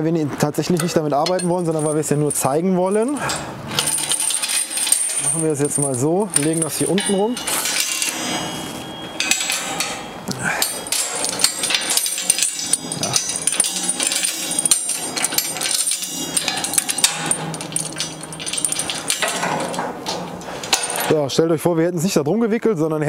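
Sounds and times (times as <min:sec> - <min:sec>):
steel chain rattling and clinking: 0:00.7 - 0:21.2.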